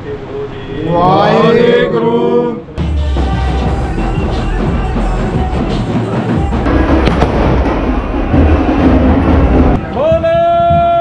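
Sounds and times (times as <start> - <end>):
fireworks crackling and rumbling: 6.7 - 10.9
sharp firework cracks: 7.0 - 7.7.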